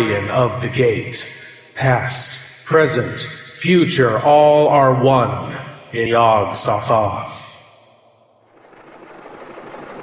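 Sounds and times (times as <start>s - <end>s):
vehicle engine running: 8.5s - 10.0s.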